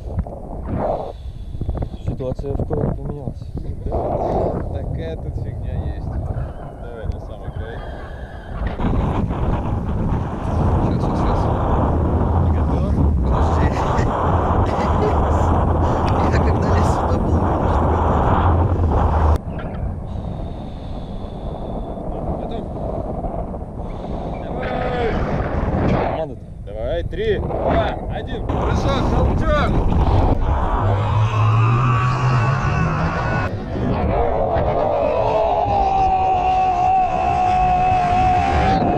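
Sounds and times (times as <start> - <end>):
wind buffeting microphone: 0.0 - 38.9.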